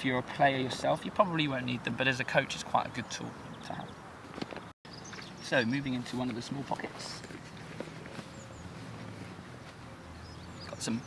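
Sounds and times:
low outdoor background: 0.0 - 11.0.

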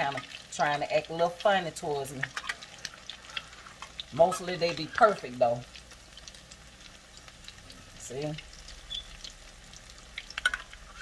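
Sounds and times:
food sizzling in hot oil: 0.0 - 11.0
oil clicks and pops: 10.1 - 10.8.

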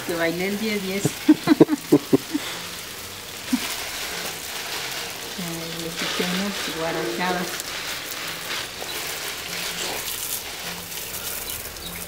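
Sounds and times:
hose spray hissing: 0.0 - 12.0.

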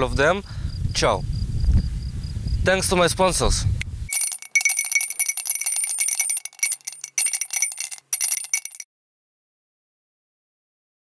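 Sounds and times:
coins clinking and jingling: 4.1 - 8.8.

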